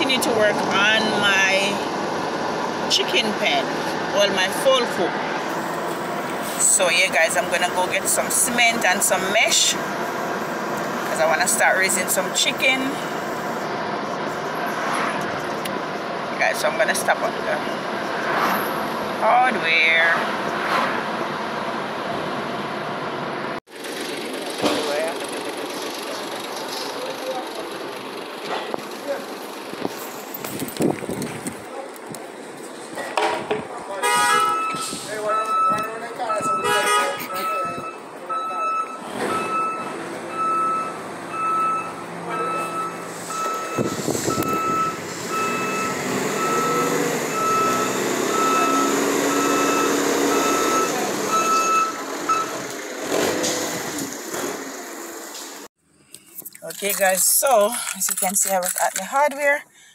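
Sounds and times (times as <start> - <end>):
steady yard noise: 0.0 - 59.9
forklift reversing alarm beeping: 34.2 - 52.6.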